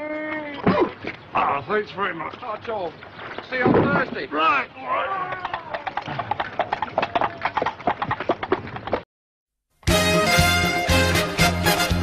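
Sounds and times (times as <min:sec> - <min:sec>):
horse hoofbeats clip-clopping: 0:04.9 - 0:09.0.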